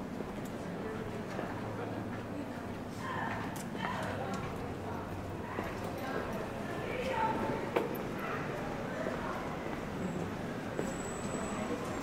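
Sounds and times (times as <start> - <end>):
people talking: 0.5 - 12.0.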